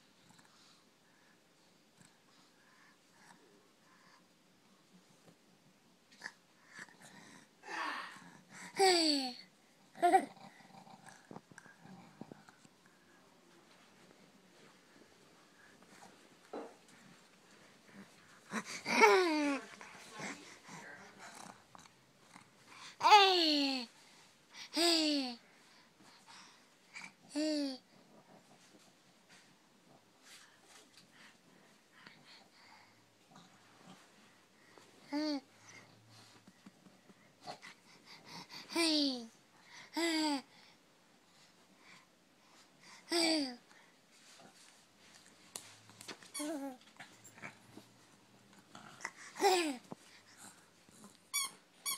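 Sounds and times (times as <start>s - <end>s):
faint baby noises: 17.9s - 21.6s, 35.0s - 35.9s, 46.2s - 47.6s, 49.0s - 50.0s.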